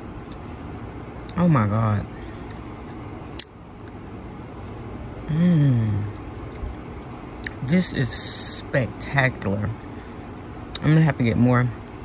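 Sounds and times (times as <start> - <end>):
low outdoor background noise: 0.0 - 12.0.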